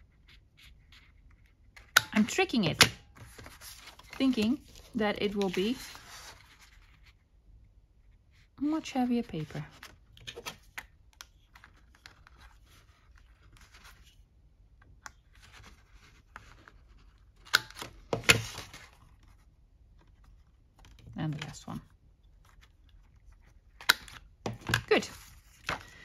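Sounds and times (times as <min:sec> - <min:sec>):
paper handling: 0:03.2 - 0:07.1.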